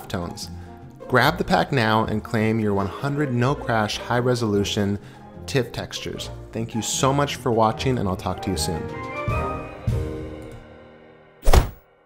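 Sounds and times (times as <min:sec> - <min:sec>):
background music chord: 0:00.0 - 0:12.0
loud thud: 0:11.4 - 0:11.8.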